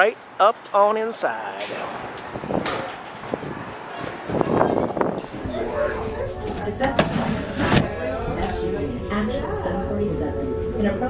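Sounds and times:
murmur of voices: 1.1s - 11.0s.

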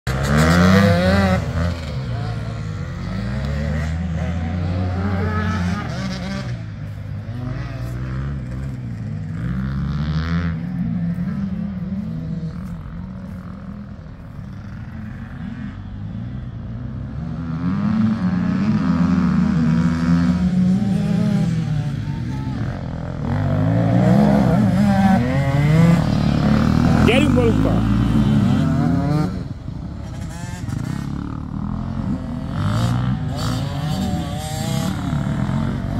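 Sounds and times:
motorcycle engines revving: 0.0s - 35.9s.

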